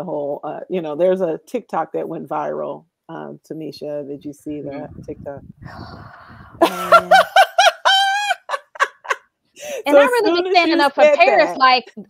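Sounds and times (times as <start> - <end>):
gasping breaths: 5.6 - 6.6
woman laughing: 6.6 - 11.4.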